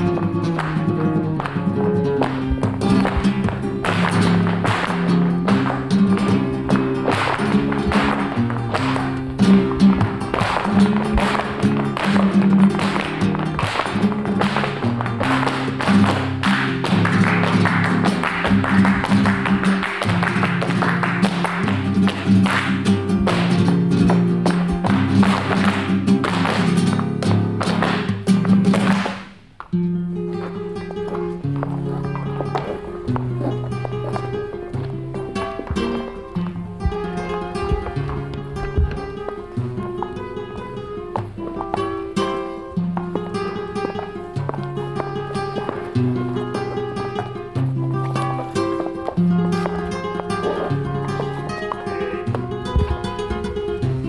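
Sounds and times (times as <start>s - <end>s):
fast percussive tapping: 0.0s - 29.3s, 35.2s - 39.4s
flamenco guitar: 0.0s - 54.0s.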